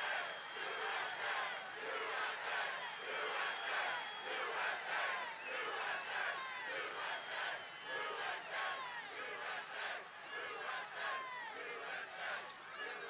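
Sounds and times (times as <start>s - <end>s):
crowd shouting and chanting: 0.0s - 13.0s.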